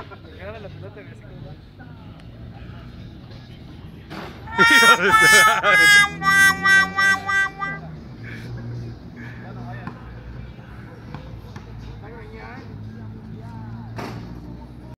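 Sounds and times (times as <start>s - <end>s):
distant men's voices: 2.0s - 11.1s
held musical notes: 4.5s - 7.9s.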